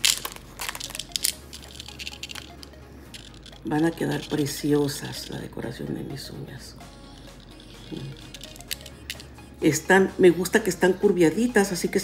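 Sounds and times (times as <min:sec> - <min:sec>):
plastic packet crinkling: 0:00.0 - 0:05.4, 0:07.7 - 0:09.3.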